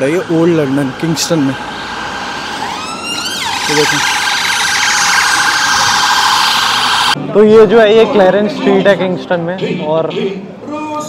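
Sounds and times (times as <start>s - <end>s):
emergency vehicle siren wailing: 0.0s - 7.2s.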